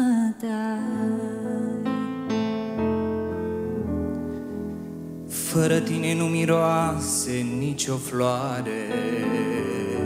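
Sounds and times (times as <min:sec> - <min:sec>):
woman singing a ballad: 0:00.0 - 0:02.3
soft instrumental accompaniment: 0:00.0 - 0:10.0.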